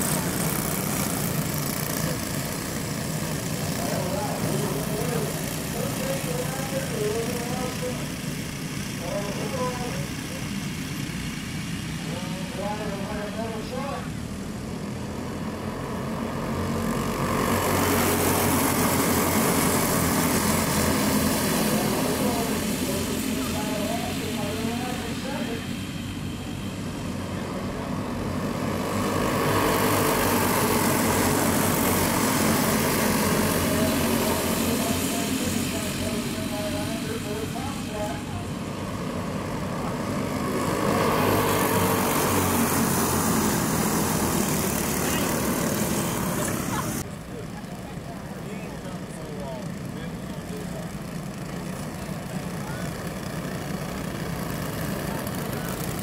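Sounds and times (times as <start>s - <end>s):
racing kart engines passing: 0.0s - 56.0s.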